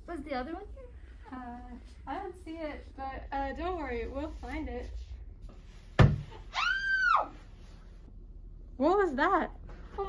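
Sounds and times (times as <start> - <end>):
woman screaming: 6.5 - 7.4.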